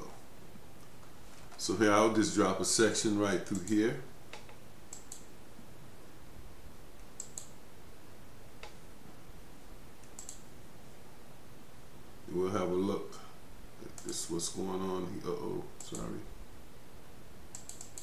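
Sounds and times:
faint background hiss: 0:00.0 - 0:18.0
computer mouse clicking: 0:03.5 - 0:05.3, 0:07.0 - 0:07.6, 0:08.6 - 0:08.8, 0:10.0 - 0:10.5, 0:13.9 - 0:14.2, 0:15.8 - 0:16.2, 0:17.5 - 0:18.0.

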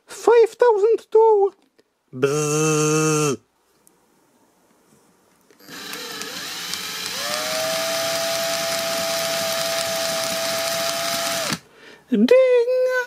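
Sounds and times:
cordless drill motor whining: 0:05.6 - 0:11.6.

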